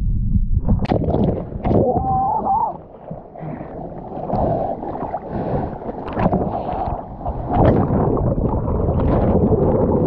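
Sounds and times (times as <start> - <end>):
muffled water rush: 0.6 - 10.0
water sloshing and splashing: 0.8 - 10.0.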